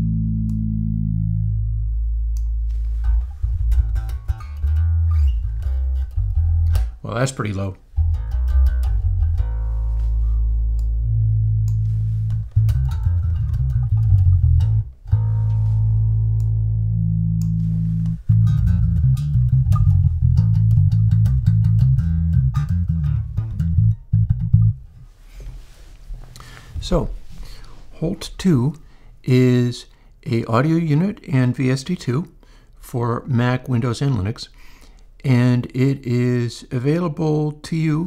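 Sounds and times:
deep electric bass guitar notes: 0.0 - 25.2.

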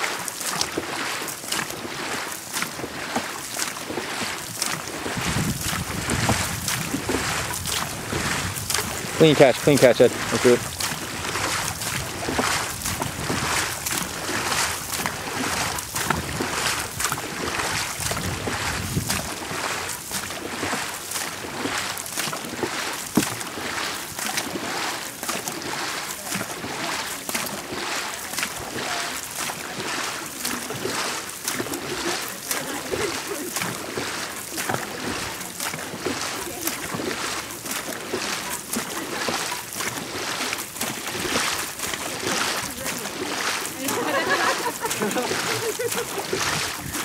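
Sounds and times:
paddles splashing in water: 0.0 - 47.0
water rushing past hull: 0.0 - 47.0.

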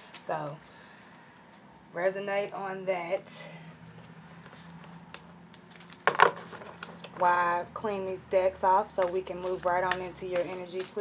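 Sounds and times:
cards clattering on desk: 5.6 - 7.2.

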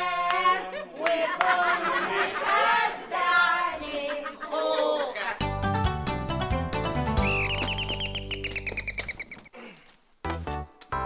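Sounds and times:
bird-like chirping trill: 7.2 - 9.5.

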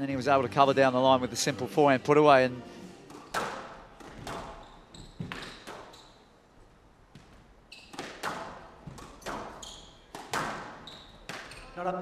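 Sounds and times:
squash ball cracks: 3.0 - 5.9, 7.1 - 11.7
court shoes squeaking: 3.0 - 12.0.

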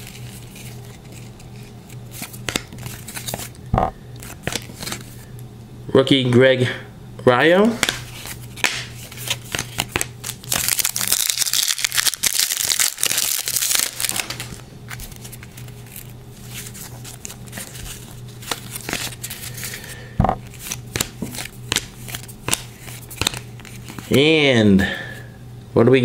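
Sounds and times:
cards clicking and sliding: 0.0 - 5.2, 7.8 - 24.2
low steady hum: 0.0 - 26.0
wrapper crinkling: 8.0 - 19.6.

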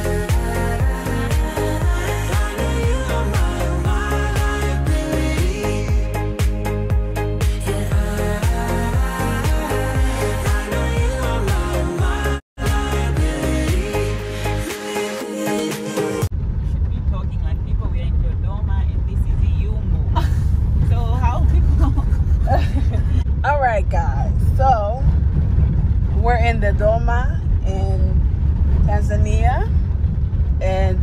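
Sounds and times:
car driving on dirt road: 16.3 - 31.0.

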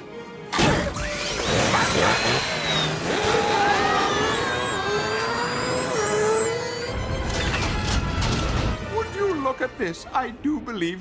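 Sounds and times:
gliding whining tones: 1.1 - 8.6.

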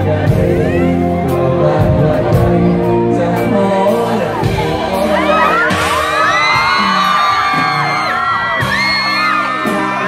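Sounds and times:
live band music: 0.0 - 10.0
crowd screaming and whooping: 4.4 - 10.0.

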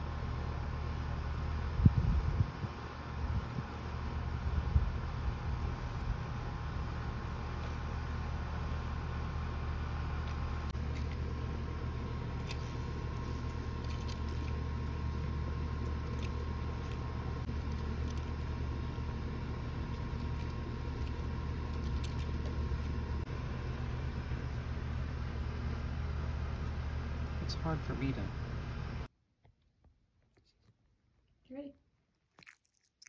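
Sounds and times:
low mechanical hum: 0.0 - 29.1.

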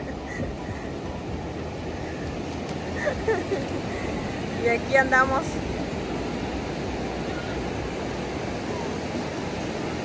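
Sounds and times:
ocean surf breaking: 0.0 - 10.0.

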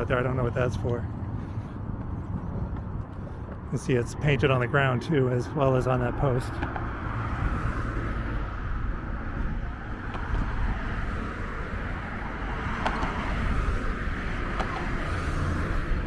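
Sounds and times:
road traffic noise: 0.0 - 16.0.

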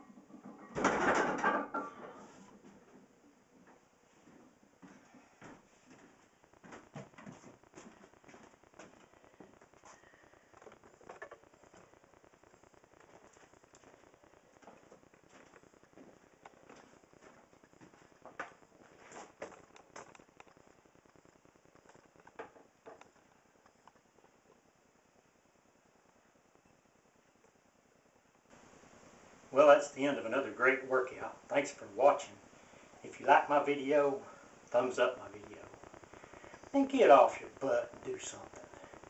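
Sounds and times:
faint handling clicks and rustles: 1.7 - 25.3, 30.3 - 39.0.

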